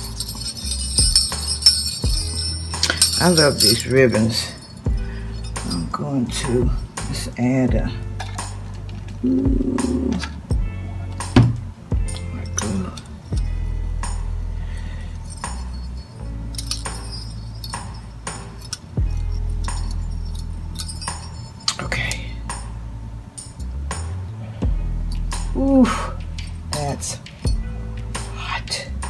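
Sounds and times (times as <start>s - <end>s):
small metal bells clinking: 0.0s - 7.1s, 12.0s - 22.1s, 23.3s - 23.8s, 26.2s - 27.7s
background music: 0.0s - 29.0s.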